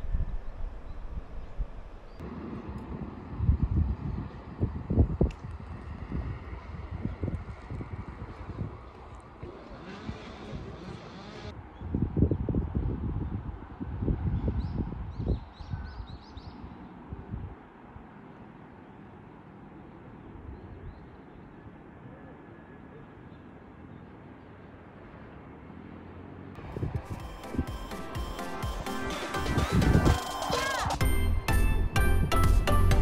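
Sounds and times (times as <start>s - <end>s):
wind buffeting microphone: 0.0s - 17.7s, 26.6s - 27.7s.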